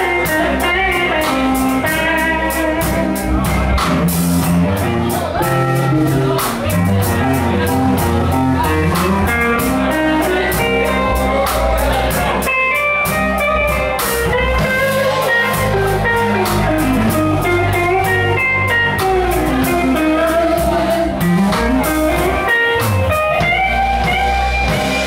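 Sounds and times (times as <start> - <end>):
bass guitar: 0.0 - 25.0
drum kit: 0.0 - 25.0
electric guitar bending notes: 0.0 - 25.0.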